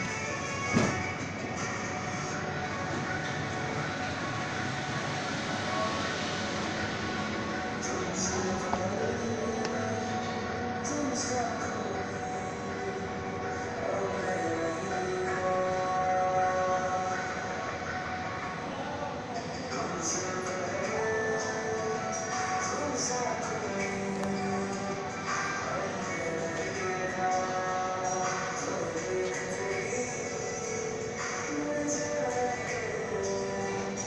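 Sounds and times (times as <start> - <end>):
injection moulding machine hum: 0.0 - 34.0.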